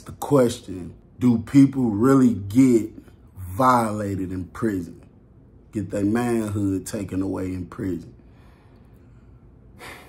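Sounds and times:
low room hum: 0.0 - 10.0
person inhaling: 8.2 - 10.0.

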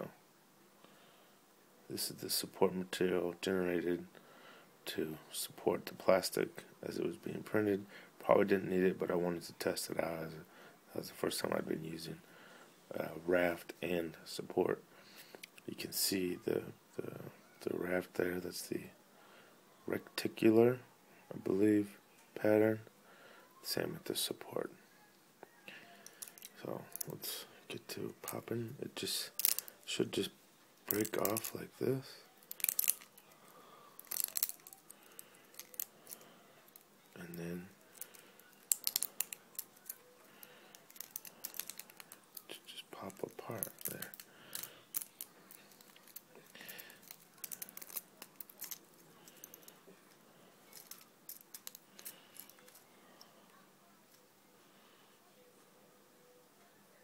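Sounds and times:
plastic snapping and cracking: 32.5 - 33.2, 34.0 - 36.8, 38.0 - 42.5, 43.1 - 49.6.

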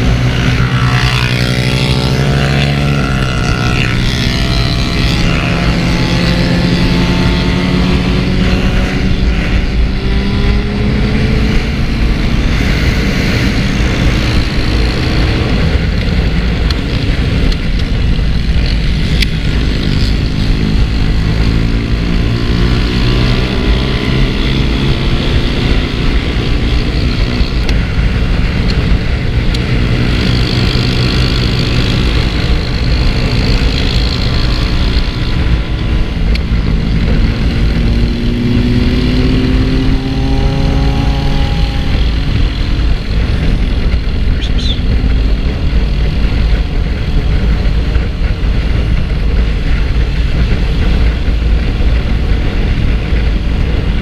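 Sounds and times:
motorcycle engine running: 0.0 - 54.0
wind rumble on microphone: 0.0 - 54.0.

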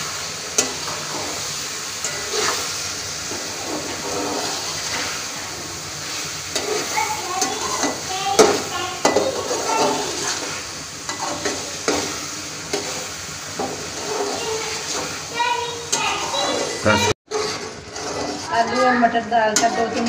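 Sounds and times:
metal spatula scraping a pot: 0.0 - 15.3, 15.9 - 20.0
frying sizzle: 0.0 - 20.0.

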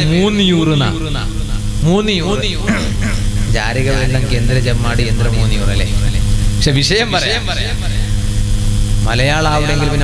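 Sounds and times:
man preaching over loudspeaker: 0.0 - 8.1, 9.0 - 10.0
steady low hum: 0.0 - 10.0.

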